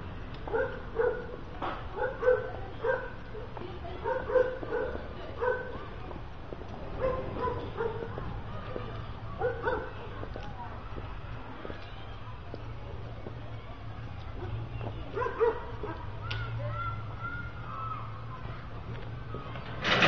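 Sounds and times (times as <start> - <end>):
dog barking: 0.5 - 3.2, 4.0 - 5.8, 7.0 - 8.2, 9.4 - 10.0, 15.1 - 16.0.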